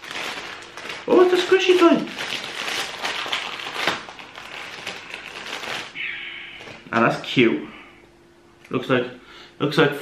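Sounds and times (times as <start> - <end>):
plastic wrapper crinkling: 0.0 - 6.0, 6.6 - 7.0.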